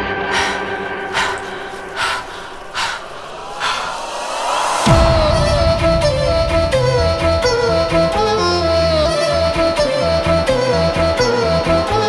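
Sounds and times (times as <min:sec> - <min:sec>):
person breathing hard: 0:00.0 - 0:07.4.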